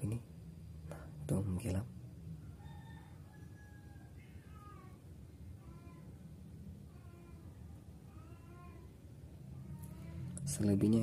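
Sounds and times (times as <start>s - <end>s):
low steady hum: 0.0s - 11.0s
cat meowing faintly: 4.0s - 6.1s.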